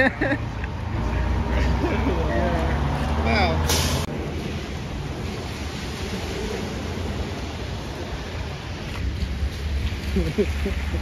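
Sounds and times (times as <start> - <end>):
car wash equipment rushing: 3.2 - 11.0.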